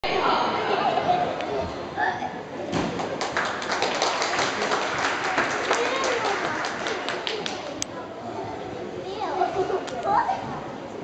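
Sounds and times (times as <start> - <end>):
indistinct chatter of spectators: 0.0 - 11.0.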